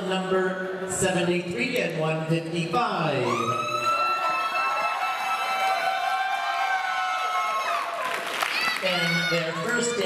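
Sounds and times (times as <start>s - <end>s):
person cheering whoo: 3.2s - 9.5s.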